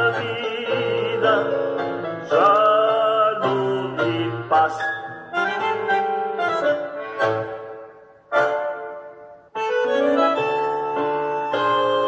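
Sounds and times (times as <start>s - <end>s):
piano-like keyboard chords: 0.0s - 12.0s.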